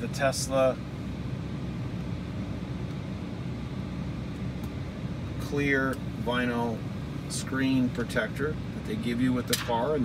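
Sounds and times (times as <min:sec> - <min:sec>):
car cabin hum and rumble: 0:00.0 - 0:10.0.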